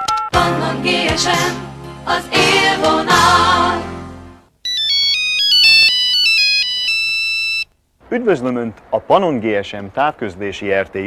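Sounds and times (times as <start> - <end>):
mobile phone ring melody: 0.0 - 0.4, 4.6 - 7.7
music jingle: 0.0 - 6.8.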